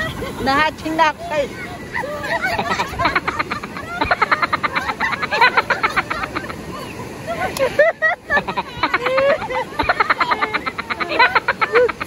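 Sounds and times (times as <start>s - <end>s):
women laughing hard: 0.0s - 0.5s, 1.8s - 12.0s.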